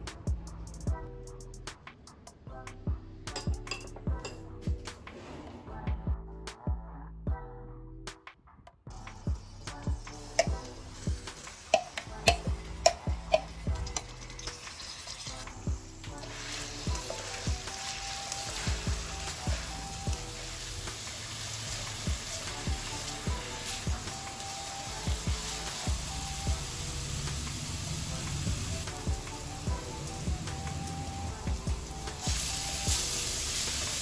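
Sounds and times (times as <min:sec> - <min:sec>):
paste sizzling in oil: 0:08.9 - 0:34.0.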